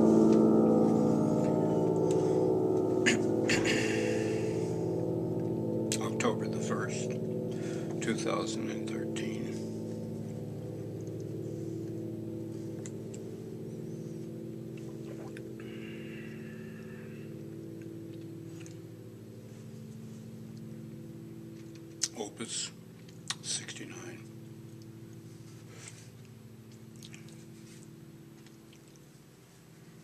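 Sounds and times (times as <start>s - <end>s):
piano chord ringing: 0.0s - 29.4s.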